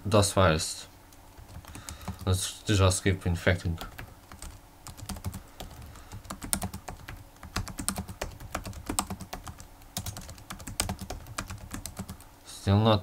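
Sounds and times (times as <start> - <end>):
computer keyboard typing: 1.4 - 2.3, 3.8 - 12.2.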